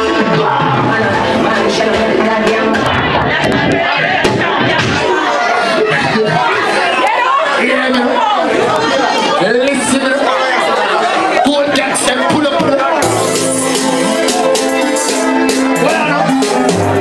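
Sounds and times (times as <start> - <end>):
deep bass music: 0.0 - 5.0, 12.5 - 17.0
crowd talking and shouting: 0.0 - 17.0.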